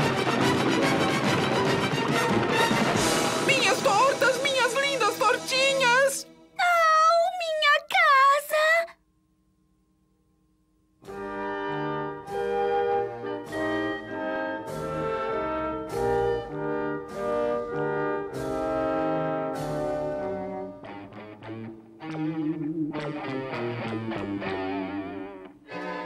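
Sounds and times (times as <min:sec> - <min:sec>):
orchestral music with brass chords: 0:00.0 - 0:04.4, 0:11.1 - 0:21.2.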